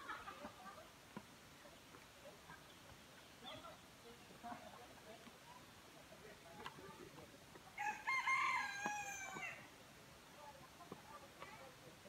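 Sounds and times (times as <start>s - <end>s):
rooster crowing: 7.8s - 9.6s.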